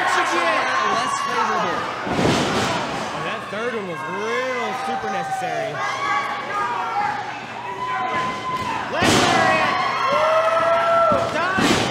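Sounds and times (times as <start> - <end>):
voices shouting: 0.0 - 11.7.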